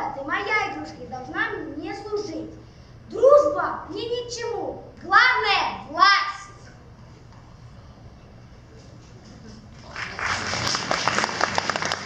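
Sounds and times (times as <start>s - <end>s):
audience applause: 9.8s - 12.0s.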